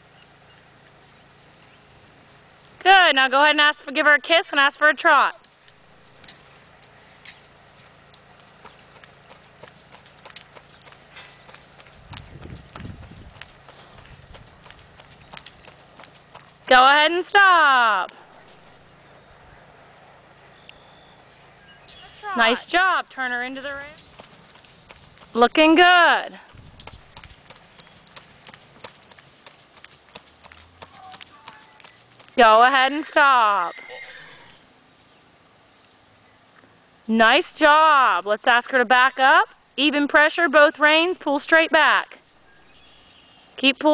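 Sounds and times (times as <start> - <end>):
horse hooves trotting on dirt: 0.0 - 21.4, 22.2 - 34.7.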